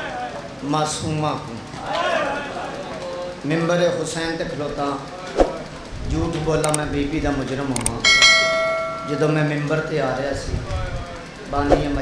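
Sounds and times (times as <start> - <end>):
bright bell ding: 8.0 - 9.7.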